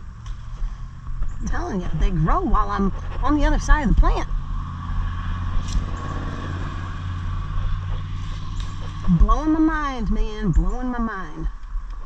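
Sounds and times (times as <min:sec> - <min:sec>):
low motor hum: 0:00.0 - 0:12.0
person's voice: 0:01.4 - 0:04.3, 0:09.1 - 0:11.5.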